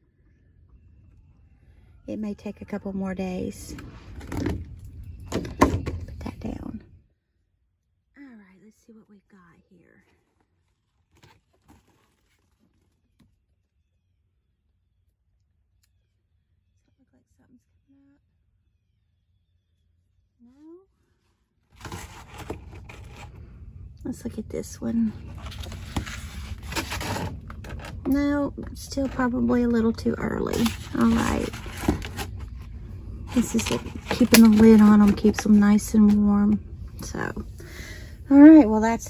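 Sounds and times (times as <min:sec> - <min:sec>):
paper and plastic scraping: 0:10.1 - 0:13.4, 0:21.7 - 0:23.5, 0:25.1 - 0:28.2, 0:28.9 - 0:32.7, 0:33.3 - 0:36.2
plastic rustles and clicks: 0:10.2 - 0:13.4.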